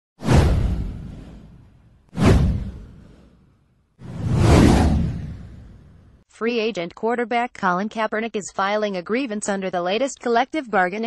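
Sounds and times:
deep rumble: 0.2 - 3.3, 4.0 - 6.2
swoosh sound effect: 0.2 - 6.2.

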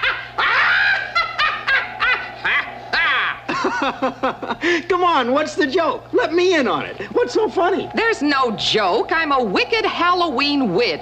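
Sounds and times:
shrill cackling laugh: 0.0 - 4.6.

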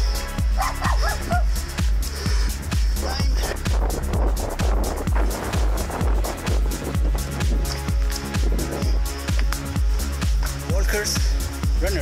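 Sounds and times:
dance music with kick drum: 0.0 - 12.0
dog-like yelps: 0.6 - 1.5.

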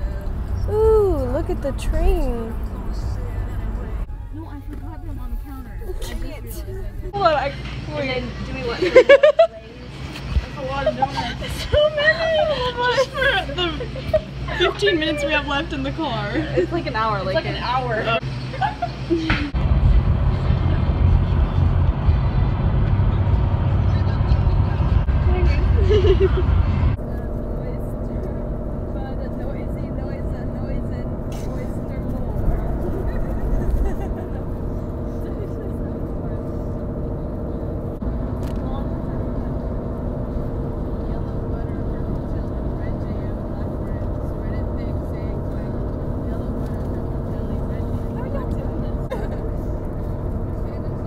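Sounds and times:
road and engine rumble in car: 0.0 - 8.6, 19.5 - 51.0
low hum: 0.0 - 51.0.

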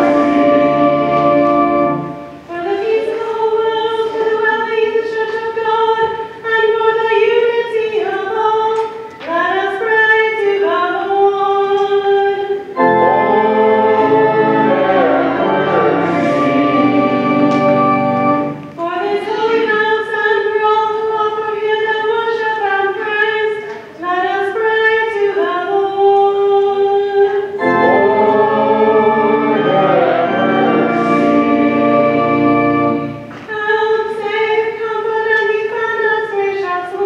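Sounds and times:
held accompaniment chord: 0.0 - 5.0, 12.3 - 20.6, 27.2 - 35.1
woman singing: 2.5 - 12.7, 18.8 - 28.4, 33.4 - 37.0
person chanting unaccompanied: 2.5 - 17.7, 18.8 - 32.0.

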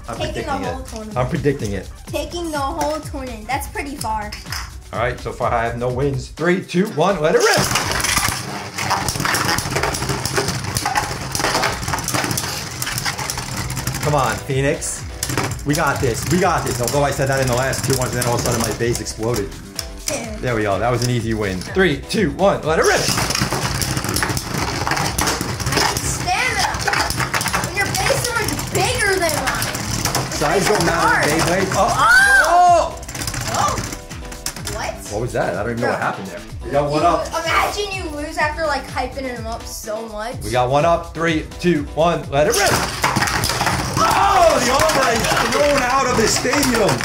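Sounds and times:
spinning tops whirring: 7.4 - 19.9, 22.8 - 35.1, 42.5 - 47.0
rapid clicks and clatter: 7.5 - 14.4, 15.2 - 19.6, 22.9 - 34.9, 42.5 - 47.0
excited voices crying out: 30.9 - 33.8, 43.9 - 44.8.

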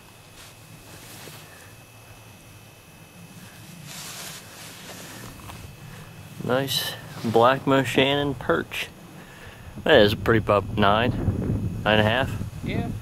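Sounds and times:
rustling of gloves and jacket: 0.0 - 2.2, 3.3 - 7.7
low steady rumble: 0.0 - 13.0.

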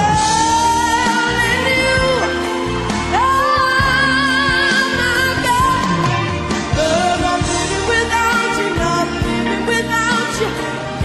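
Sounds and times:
backing music: 0.0 - 11.0.

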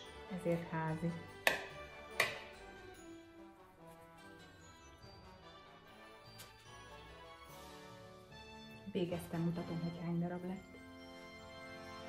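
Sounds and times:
soft instrumental music: 0.0 - 12.0.

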